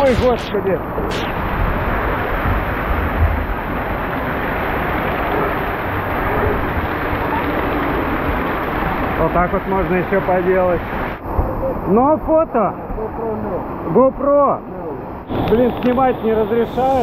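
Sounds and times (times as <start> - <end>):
water spraying and splashing: 0.0 - 11.2, 15.3 - 17.0.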